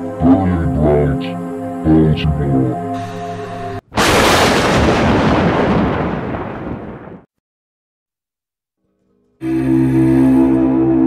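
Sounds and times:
loud rumbling crash: 4.0 - 7.3.

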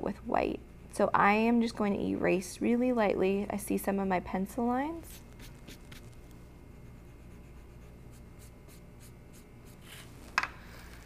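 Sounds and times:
eraser rubbing on wood: 5.0 - 6.2.

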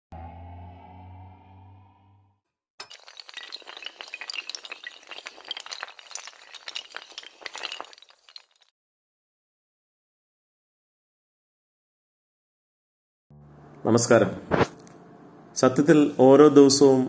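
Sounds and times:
low humming tone: 0.1 - 2.4, 13.3 - 14.1
shattering breaking pieces: 2.8 - 8.7.

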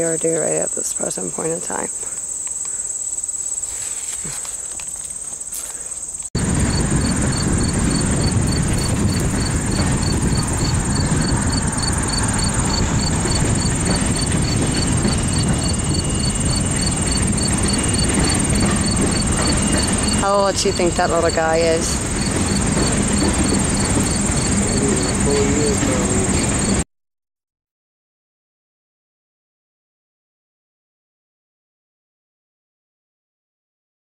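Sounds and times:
high-pitched insect drone: 0.0 - 26.8
insect chirping: 0.0 - 26.8
low rushing noise: 6.4 - 21.0.

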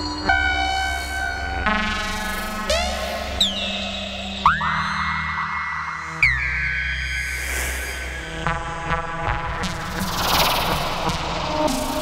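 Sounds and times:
low synthesizer drone: 8.0 - 12.0.

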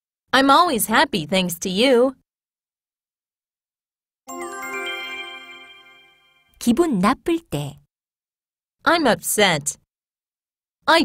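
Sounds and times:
rising bell-like chime: 4.3 - 6.6.

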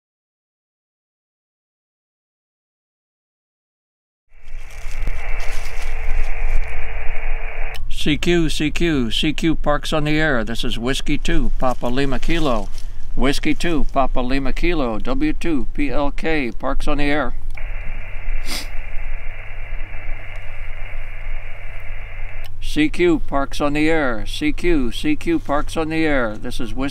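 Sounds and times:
radio static hiss: 4.3 - 26.9
steady low hum: 4.4 - 26.9
man's voice on radio: 6.3 - 26.9
brief sharp noise: 17.6 - 18.9.

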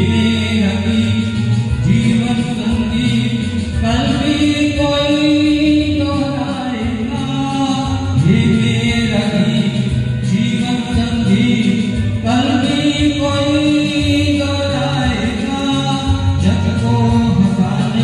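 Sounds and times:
man singing into a microphone: 0.0 - 18.0.

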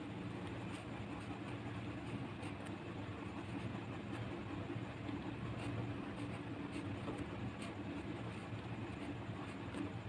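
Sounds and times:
low background hum: 0.0 - 10.0
pen scratching on paper: 0.2 - 10.0.

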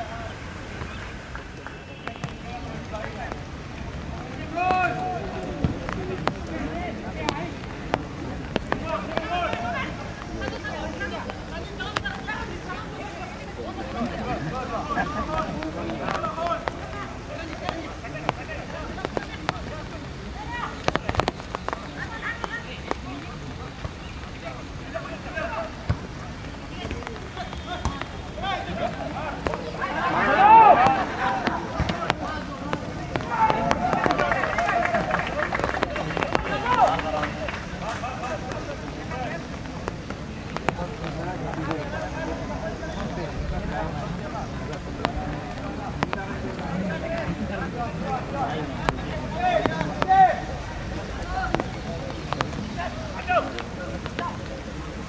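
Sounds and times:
steady outdoor hiss: 0.0 - 55.0
voices calling out: 0.0 - 55.0
people shouting: 4.3 - 5.6, 27.4 - 37.4.

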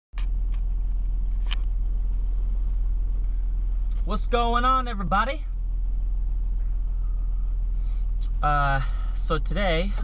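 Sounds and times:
car idling: 0.2 - 10.0.

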